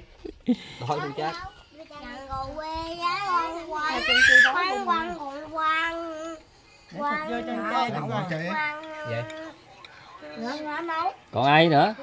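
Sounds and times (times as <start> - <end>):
child's wavering voice: 1.4 - 6.4.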